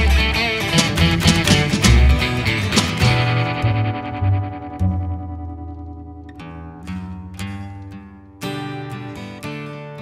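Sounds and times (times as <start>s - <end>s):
effected guitar chords: 0.0s - 10.0s
low bass note: 3.3s - 6.3s.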